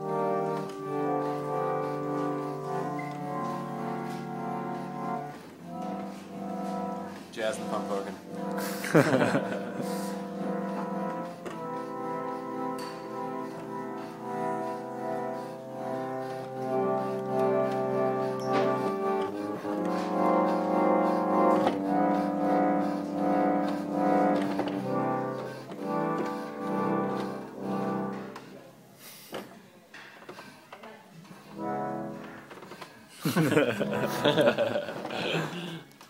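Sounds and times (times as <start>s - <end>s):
pump organ chords: 0.0s - 28.6s, 31.5s - 32.6s, 33.4s - 35.4s.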